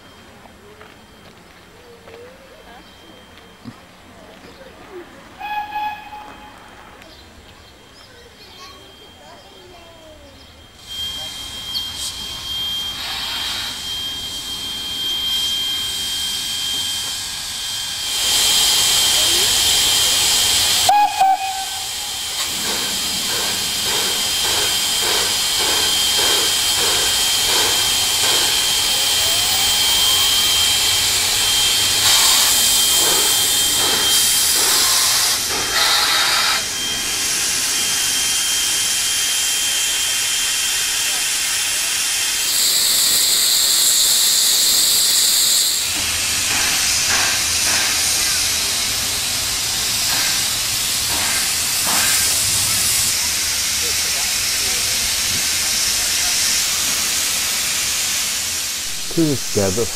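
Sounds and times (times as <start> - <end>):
steam locomotive hissing: 1.6 - 59.9.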